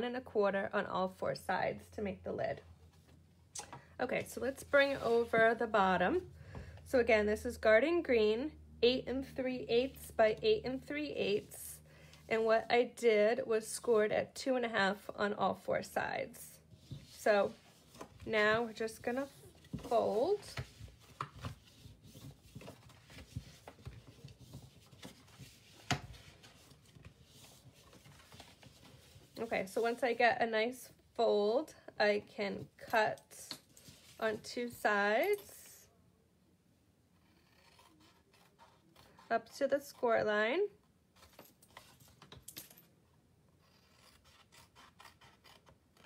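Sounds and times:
faint paper rustling: 0:16.6 - 0:30.1.

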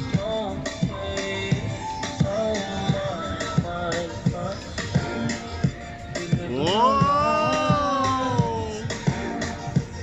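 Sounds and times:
dance music with slow beat: 0:00.0 - 0:10.0.

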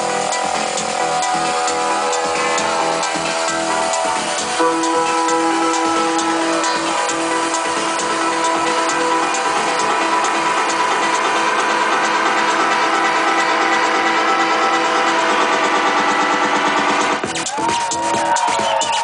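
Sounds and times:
electro-techno over sound system: 0:00.0 - 0:19.0.

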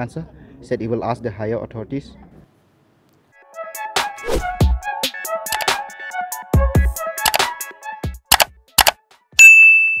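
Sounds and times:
short clicks: 0:05.5 - 0:05.7, 0:07.2 - 0:07.5, 0:08.3 - 0:09.0
bright bell ding: 0:09.4 - 0:10.0.

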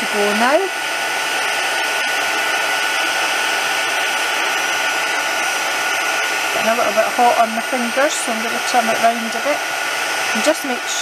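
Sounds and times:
heat gun blowing with whine: 0:00.0 - 0:11.0.

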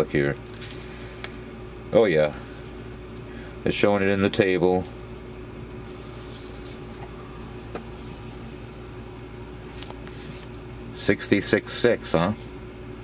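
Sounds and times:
steady background hum: 0:00.0 - 0:13.0
paper booklet rustling: 0:00.4 - 0:00.9, 0:05.8 - 0:07.2, 0:09.6 - 0:10.6.

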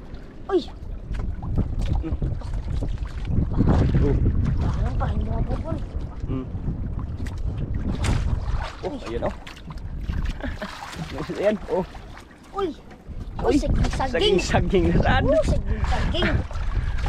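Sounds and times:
water slapping against hull: 0:00.0 - 0:17.0
wind buffeting microphone: 0:00.0 - 0:17.0.

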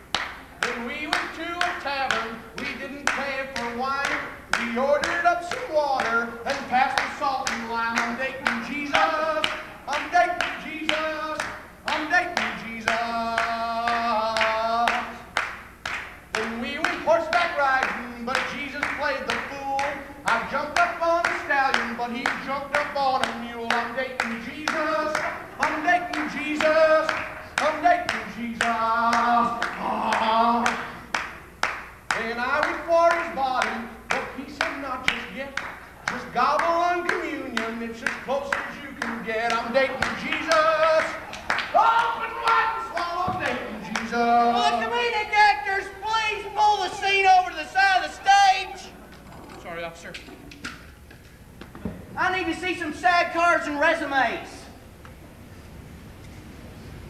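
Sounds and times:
man singing gospel unaccompanied: 0:00.0 - 0:49.0, 0:52.2 - 0:54.9
rhythmic hand clapping: 0:00.0 - 0:49.4, 0:50.0 - 0:54.5.

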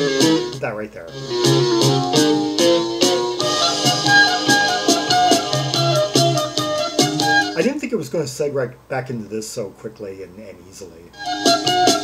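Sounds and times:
progressive rock music: 0:01.2 - 0:07.6.

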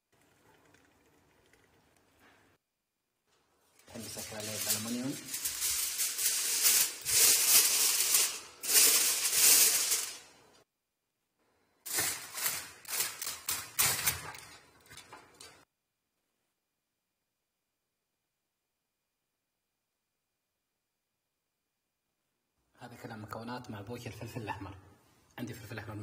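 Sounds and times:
aluminium foil crinkling: 0:03.7 - 0:10.3, 0:11.9 - 0:15.6.

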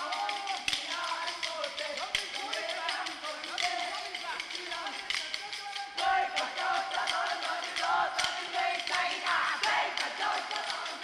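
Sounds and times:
group singing: 0:00.0 - 0:01.7, 0:06.0 - 0:11.0.

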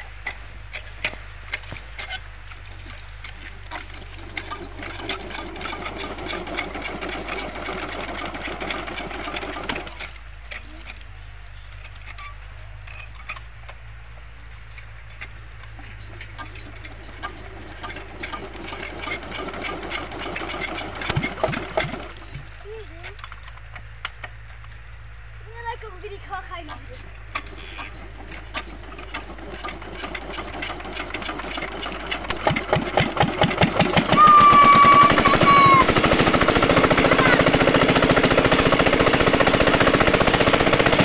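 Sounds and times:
rapid clatter: 0:15.2 - 0:24.4, 0:26.5 - 0:41.0.

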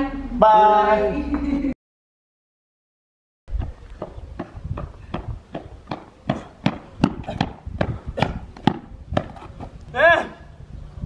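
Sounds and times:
running footsteps on asphalt: 0:03.5 - 0:09.9.

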